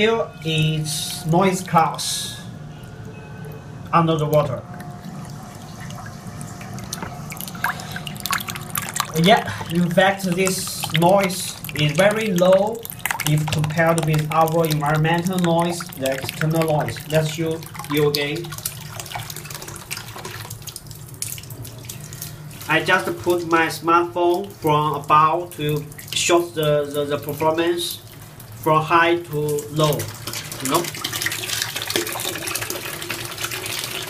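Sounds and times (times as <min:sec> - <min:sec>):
water pump humming: 0:00.0 - 0:34.0
water dripping and trickling: 0:00.6 - 0:34.0.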